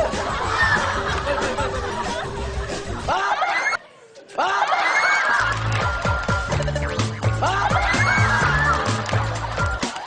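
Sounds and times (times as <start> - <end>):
music with bass beat: 0.0 - 3.1, 5.6 - 10.0
people laughing and shrieking: 0.0 - 6.5, 7.2 - 10.0.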